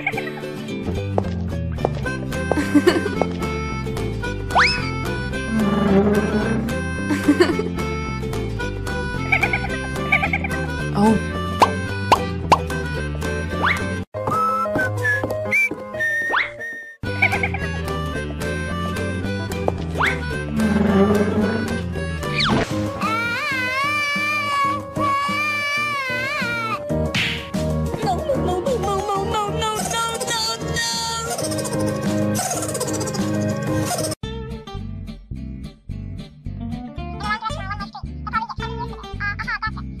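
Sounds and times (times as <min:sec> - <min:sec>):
cartoon background music: 0:00.0 - 0:40.0
high upward sweep: 0:05.5 - 0:07.1
rising bloop sound effects: 0:05.5 - 0:07.1, 0:20.6 - 0:21.8.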